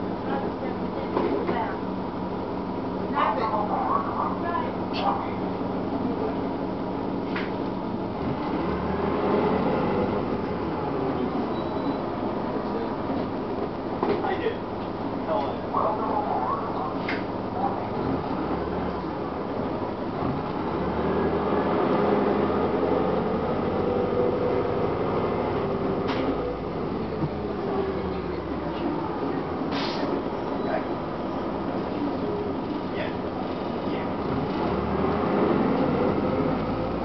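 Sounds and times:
bus diesel engine drone: 0.0s - 37.0s
road noise: 0.0s - 37.0s
short hiss: 29.7s - 30.1s.

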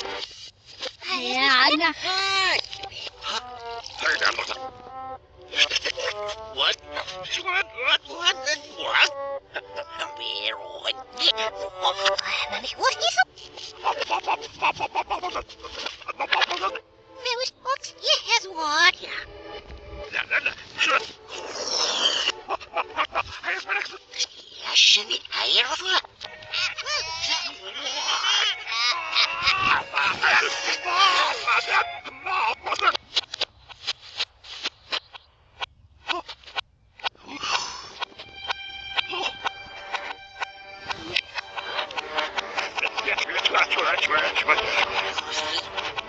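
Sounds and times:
reversed cartoon music: 2.4s - 16.8s, 26.3s - 32.7s, 37.5s - 46.0s.

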